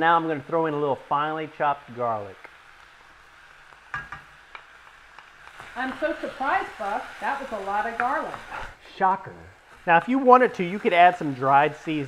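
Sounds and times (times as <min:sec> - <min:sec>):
onions sizzling in a pan: 0:00.0 - 0:12.0
wooden spoon knocking on a pan: 0:03.9 - 0:04.3, 0:07.9 - 0:08.4.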